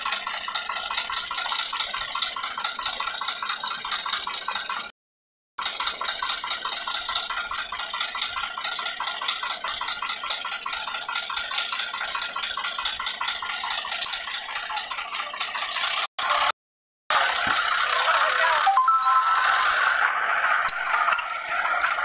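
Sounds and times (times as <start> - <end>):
diesel tractor engines idling: 0.0 - 4.9, 5.6 - 22.0.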